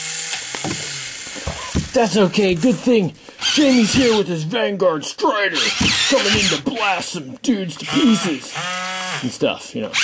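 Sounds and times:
toy robot motors whirring: 0.0s - 2.8s, 3.4s - 4.2s, 5.6s - 6.7s, 7.8s - 10.0s
sharp clicks and knocks: 0.3s - 2.9s.

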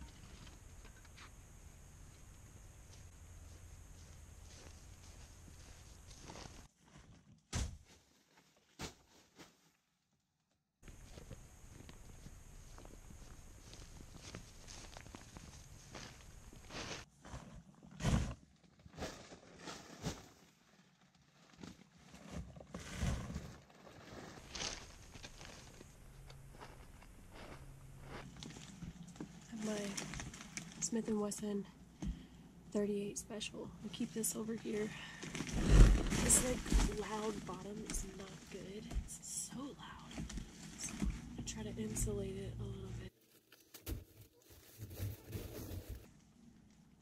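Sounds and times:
footsteps through dry grass: 2.9s - 7.1s, 10.8s - 17.1s, 23.8s - 30.6s
rustling and knocks of tent: 6.1s - 8.1s, 14.1s - 20.4s, 21.6s - 25.6s, 35.3s - 38.3s
faint steady hiss: 10.8s - 17.0s.

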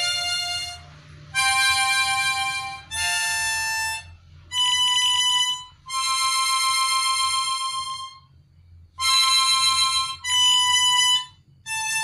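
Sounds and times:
harmonica held notes: 0.0s - 8.3s, 9.0s - 12.0s.

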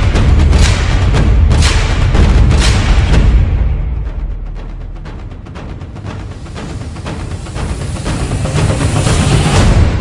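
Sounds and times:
rushing swell of noise: 6.3s - 10.0s.

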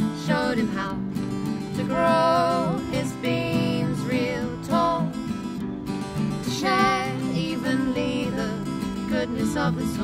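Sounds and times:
acoustic guitars strumming: 0.0s - 10.0s
person singing: 1.8s - 5.2s, 6.5s - 10.0s.

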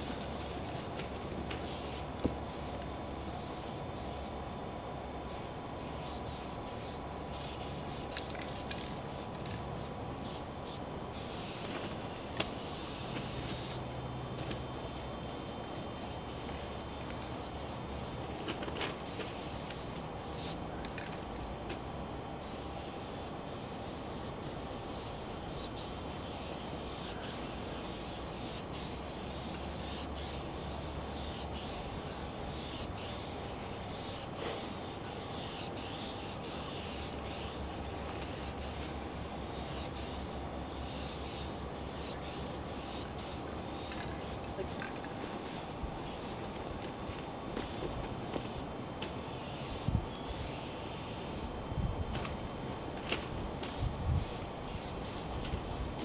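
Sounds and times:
spray paint can hissing: 0.0s - 2.8s, 5.3s - 13.8s, 14.8s - 21.3s, 22.3s - 51.6s, 52.2s - 56.0s
steady low hum: 0.0s - 56.0s.

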